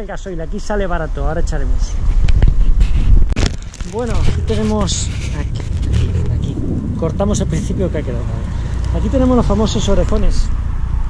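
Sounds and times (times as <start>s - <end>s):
wind buffeting microphone: 0.5s - 11.0s
camera handling knocks and rubs: 2.1s - 6.3s.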